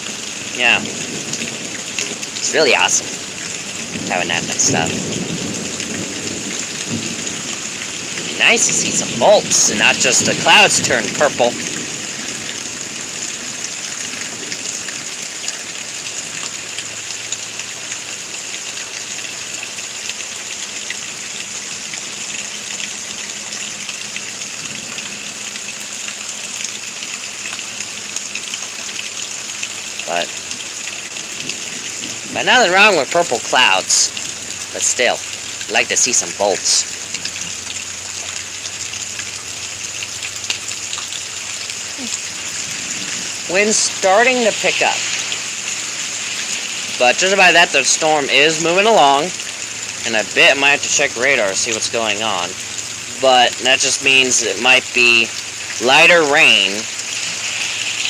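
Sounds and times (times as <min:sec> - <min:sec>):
rain hissing: 0:00.0 - 0:58.0.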